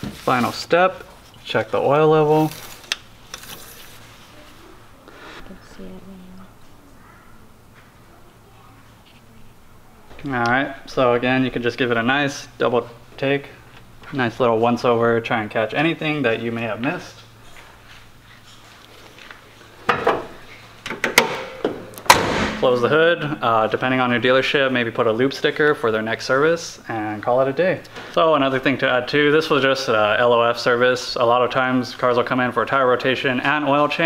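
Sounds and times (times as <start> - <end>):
low steady hum: 0.0 - 34.0.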